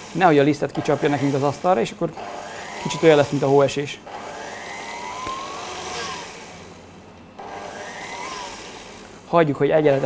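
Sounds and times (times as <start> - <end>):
stand mixer motor whine: 0.0 - 10.0.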